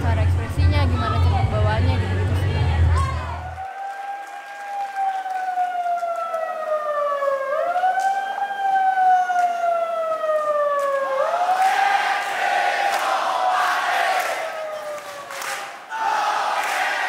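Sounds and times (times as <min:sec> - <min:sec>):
crowd noise: 0:00.0 - 0:06.0, 0:11.2 - 0:17.0
siren-like wailing tone: 0:04.8 - 0:11.5.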